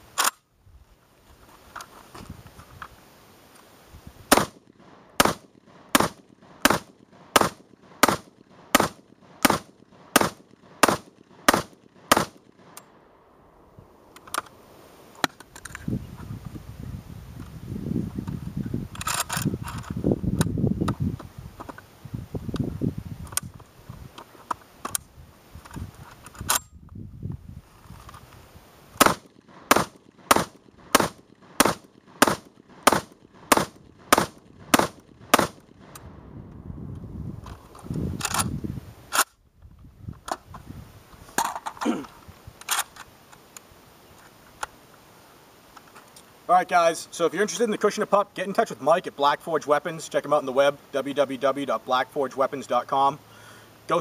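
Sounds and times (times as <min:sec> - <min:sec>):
shotgun firing rapid shots: 0:04.3 - 0:12.8, 0:29.0 - 0:35.9
sharp metallic clicks: 0:04.3 - 0:13.0.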